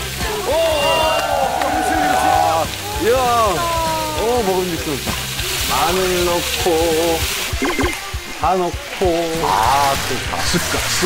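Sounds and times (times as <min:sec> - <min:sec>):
chicken sizzling in oil: 0:00.0 - 0:11.0
long vocal exclamation: 0:00.4 - 0:04.3.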